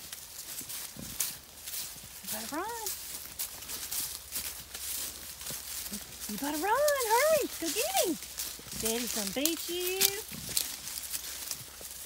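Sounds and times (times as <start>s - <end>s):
footsteps crunching on dry leaves: 0.0s - 12.0s.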